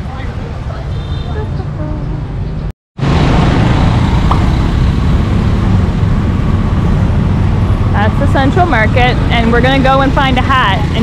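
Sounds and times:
busy street traffic: 0.0s - 11.0s.

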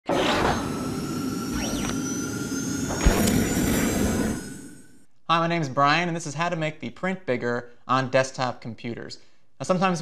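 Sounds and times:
rise and fall sweep: 0.1s - 5.1s
sharp hit: 2.8s - 5.0s.

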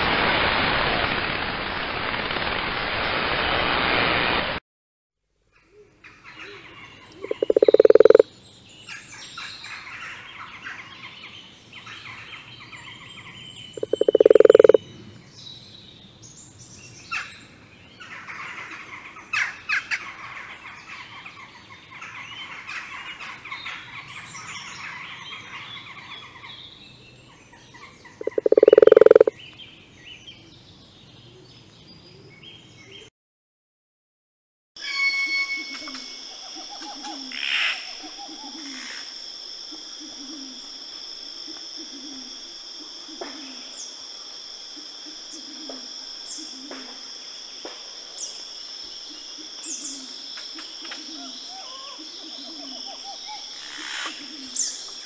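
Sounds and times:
high chirps and trills: 7.2s - 8.2s, 13.8s - 14.8s, 34.8s - 38.7s
toad croaking: 7.2s - 8.3s, 13.8s - 14.8s, 28.2s - 29.3s.

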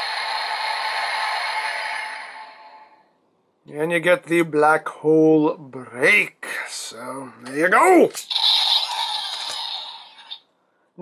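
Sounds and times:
toy speaker noisy hiss: 0.0s - 2.9s, 8.2s - 10.5s.

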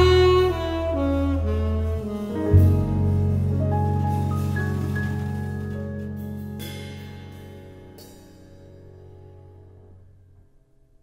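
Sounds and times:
jazz quartet chord ringing out: 0.0s - 10.0s.

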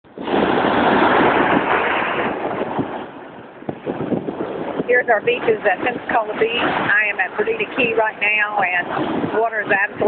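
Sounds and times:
small waves breaking on sand: 0.2s - 10.0s.

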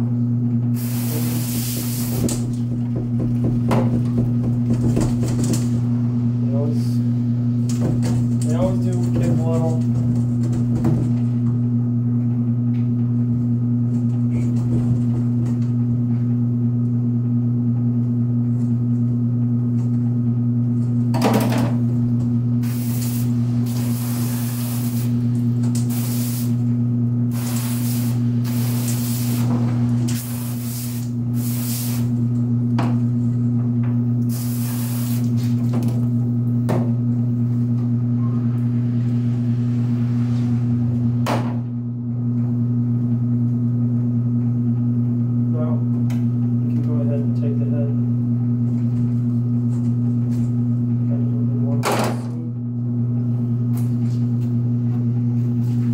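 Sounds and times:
low electrical hum: 0.0s - 55.9s
hose spraying water into sink: 0.7s - 2.6s, 22.6s - 26.6s, 27.3s - 32.2s, 34.2s - 36.0s.

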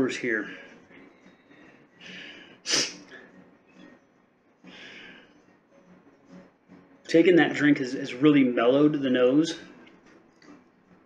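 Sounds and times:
soft breathing through nose: 1.6s - 3.4s, 4.6s - 5.6s
person sniffing: 2.0s - 3.2s.

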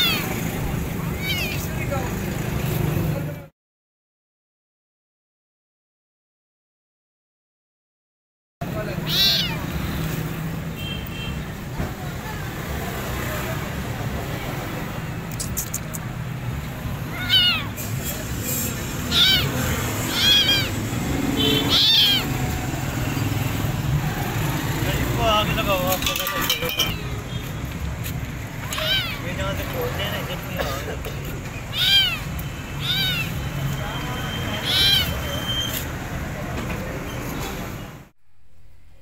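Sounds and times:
kitten meowing: 0.0s - 0.4s, 1.1s - 1.8s, 8.9s - 9.8s, 17.0s - 17.8s, 19.0s - 23.2s, 28.6s - 29.3s, 31.7s - 35.8s.

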